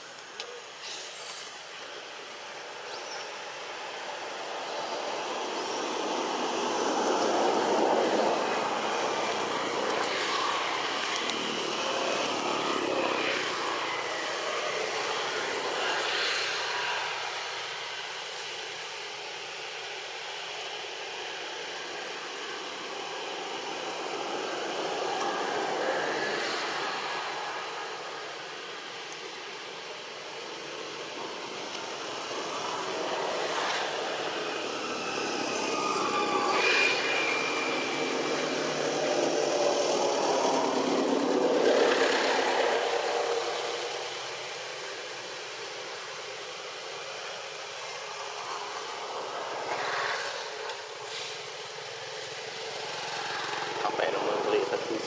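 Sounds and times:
falling whine: 1.4 - 55.0
motor vehicles passing: 30.3 - 45.4.

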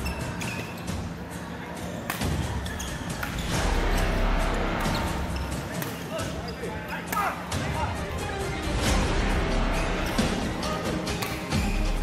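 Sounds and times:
shoes squeaking on court floor: 0.0 - 2.0, 2.6 - 3.5, 4.8 - 7.1
voices in hall: 0.0 - 12.0
racket striking shuttlecock: 5.8 - 6.1, 11.1 - 11.6.

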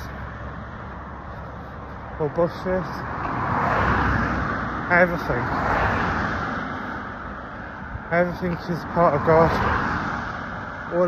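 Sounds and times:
car passing on road: 0.0 - 11.0.

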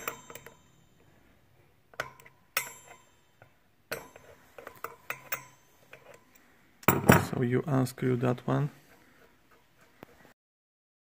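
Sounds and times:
wrench clinking on axle nut: 0.0 - 1.0, 1.9 - 7.3.

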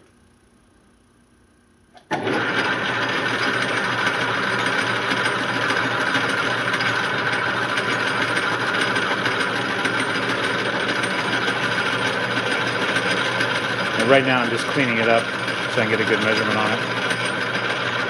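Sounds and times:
lathe tool cutting metal: 2.1 - 18.0
metal lathe running: 2.1 - 18.0.

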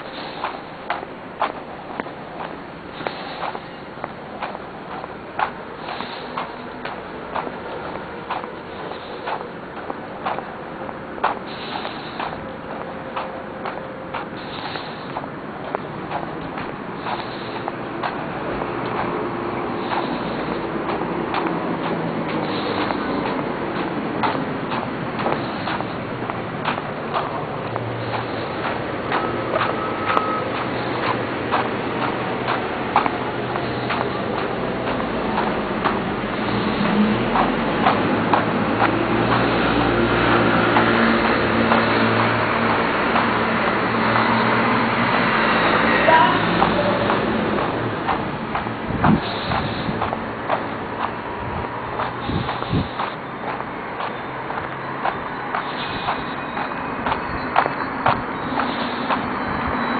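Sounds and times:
heavy vehicle engine passing: 0.0 - 59.9
passing vehicles: 0.0 - 59.9.

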